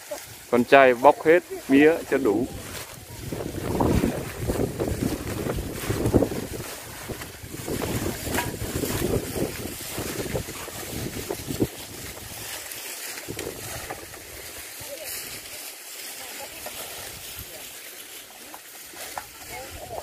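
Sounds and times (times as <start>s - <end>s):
wind buffeting microphone: 1.5s - 12.6s, 13.2s - 15.4s.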